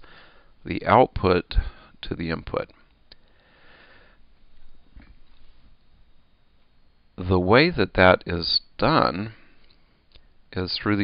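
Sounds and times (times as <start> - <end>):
man breathing in through nose: 0.0 - 0.6, 3.2 - 4.3.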